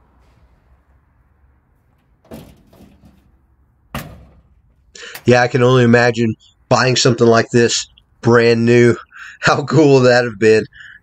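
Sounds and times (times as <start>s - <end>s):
car door thudding shut: 3.9s - 4.5s.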